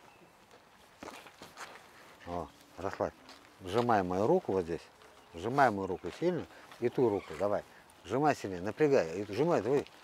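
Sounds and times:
faint footsteps on a path: 0.0 - 10.0.

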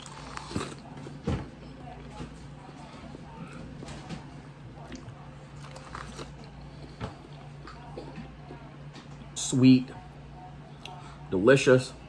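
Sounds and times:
man chewing corn on the cob: 4.9 - 6.7.

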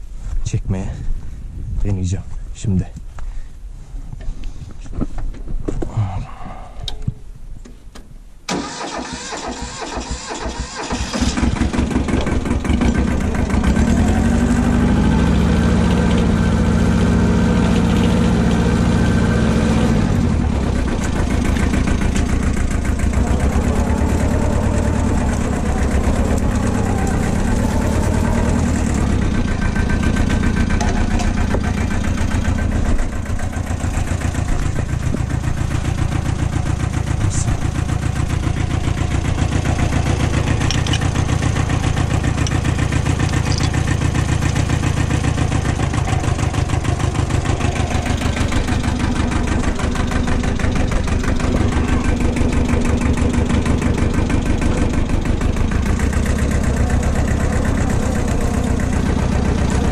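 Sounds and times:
tractor engine idling: 8.5 - 59.9
chain clinking: 43.2 - 44.6.

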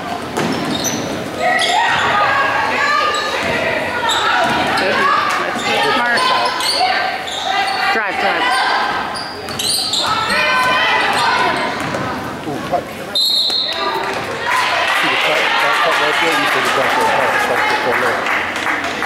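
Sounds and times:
sneakers squeaking on floor: 0.3 - 2.3, 3.0 - 14.3
voices calling out: 0.7 - 18.2
basketball bouncing: 9.5 - 12.2.

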